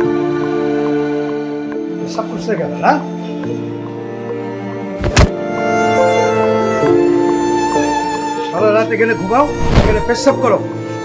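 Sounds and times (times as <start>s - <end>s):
background music: 0.0s - 11.0s
dull thud: 5.0s - 5.4s.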